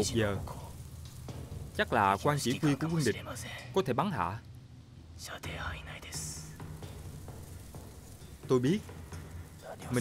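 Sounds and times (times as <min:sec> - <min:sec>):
soft whispering: 0:03.0 - 0:03.8, 0:05.2 - 0:06.6.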